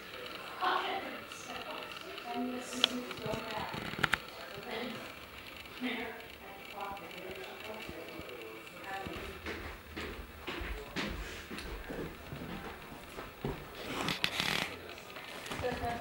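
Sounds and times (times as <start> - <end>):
muffled talking: 0.0 - 16.0.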